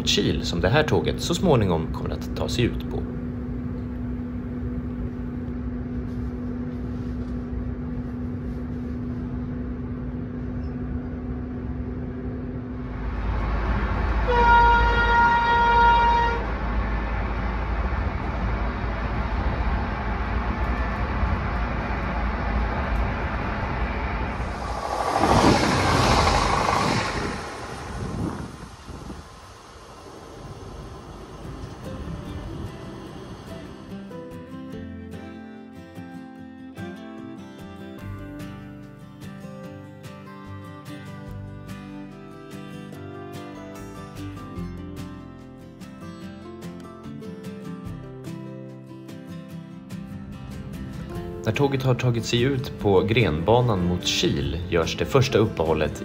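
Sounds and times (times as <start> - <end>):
train hum and rumble: 0.0 - 35.2
loud rushing noise: 12.8 - 14.3, 19.2 - 33.9
train horn: 13.9 - 16.8.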